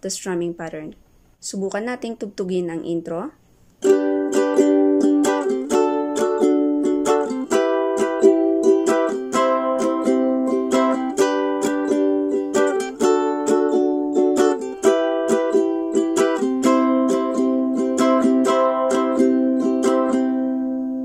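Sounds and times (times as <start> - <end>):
ukulele strumming chords: 3.8 - 21.0.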